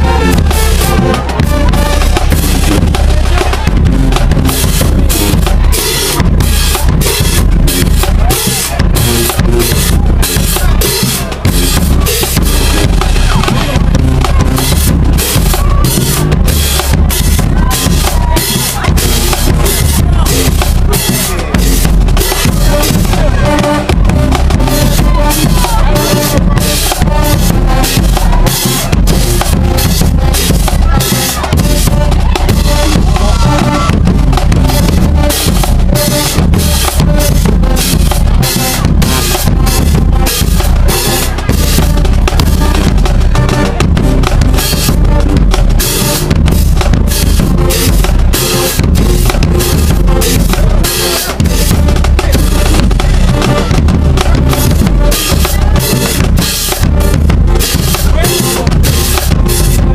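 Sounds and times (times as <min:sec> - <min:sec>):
brass playing: 0:00.0 - 0:59.9
drumline drums: 0:00.0 - 0:59.9.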